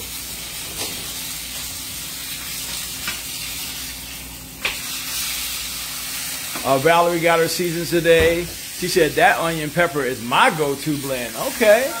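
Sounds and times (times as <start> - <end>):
fish sizzling in a skillet: 0.0 - 12.0.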